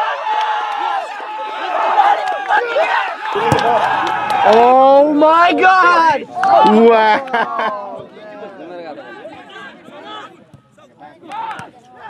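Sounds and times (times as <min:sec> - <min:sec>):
loud call: 0:03.3 - 0:06.8.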